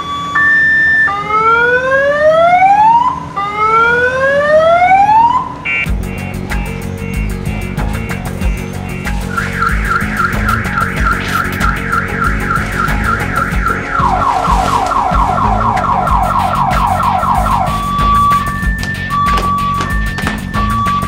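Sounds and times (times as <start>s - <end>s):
electronic car alarm siren: 0.0s - 21.0s
background music with low beat: 5.9s - 21.0s.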